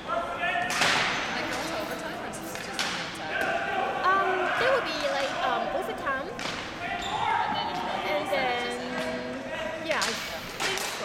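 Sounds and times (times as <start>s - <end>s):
players' voices: 0.0s - 11.0s
sneaker squeaks on hardwood floor: 6.9s - 7.6s.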